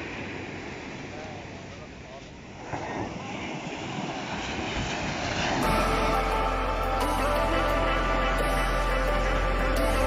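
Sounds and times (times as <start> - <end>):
background music: 5.6 - 10.0.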